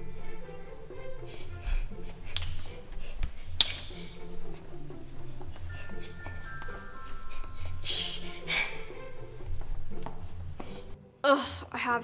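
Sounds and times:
finger snaps: 2.3s - 4.1s.

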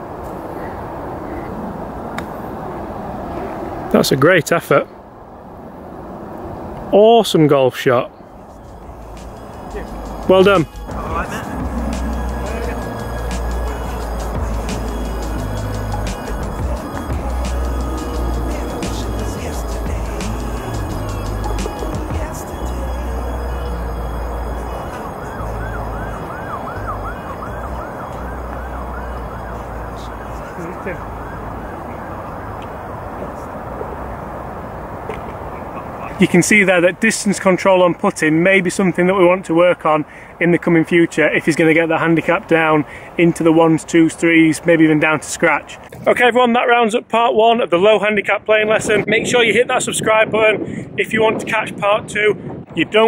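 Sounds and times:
wind buffeting microphone: 8.1s - 46.4s, 47.3s - 53.0s
short rising and falling chirps: 8.5s - 31.3s.

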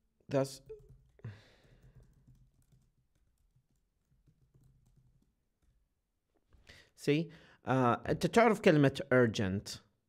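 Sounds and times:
keyboard typing: 0.6s - 5.9s.

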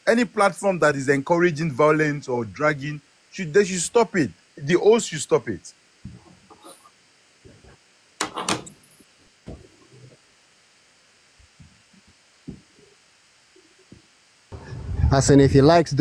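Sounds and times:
faint knocks: 12.4s - 12.8s.

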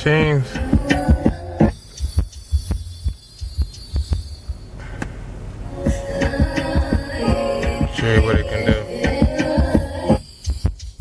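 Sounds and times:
bass-heavy music through subwoofers: 0.0s - 4.7s, 5.7s - 11.0s.

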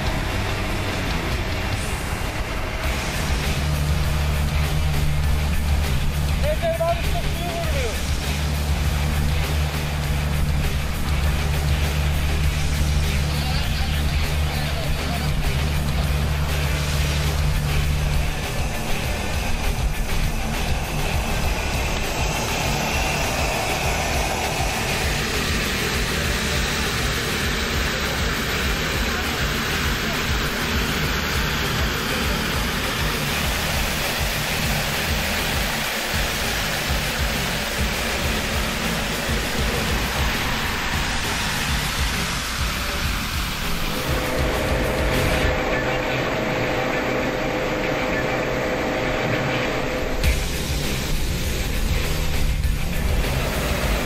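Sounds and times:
water jets spraying from hoses: 0.0s - 47.6s, 50.1s - 54.0s
background music: 0.0s - 54.0s
fire engine pump running: 0.0s - 54.0s
steady mid-pitched hum: 0.0s - 54.0s.

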